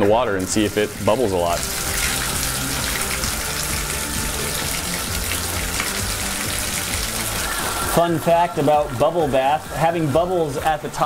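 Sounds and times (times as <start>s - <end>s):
tap water pouring into tub: 0.0s - 10.8s.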